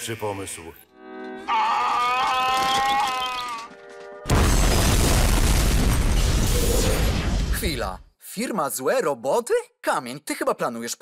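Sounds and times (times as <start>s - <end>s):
cartoon explosion blast: 4.3s - 7.7s.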